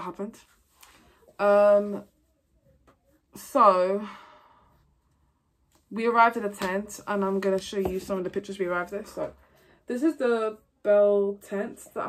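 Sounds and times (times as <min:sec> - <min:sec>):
woman speaking: 0:00.0 - 0:00.5, 0:01.3 - 0:02.1, 0:03.4 - 0:04.2, 0:05.9 - 0:12.0.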